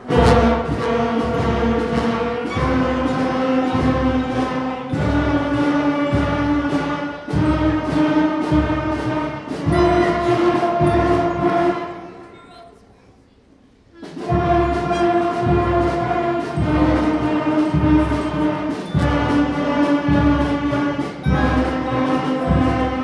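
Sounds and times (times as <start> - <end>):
concert band playing long chords: 0.0 - 12.1
steady beat: 0.0 - 12.6, 13.9 - 23.0.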